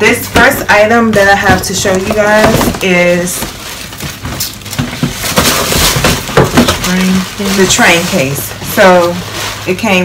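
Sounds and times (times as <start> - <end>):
paper crinkling and rustling: 1.2 - 10.0.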